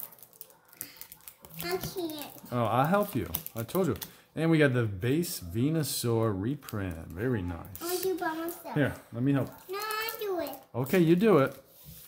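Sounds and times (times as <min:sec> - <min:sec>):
trading cards clicking and rustling: 0:00.0 - 0:04.2
person speaking: 0:01.6 - 0:11.7.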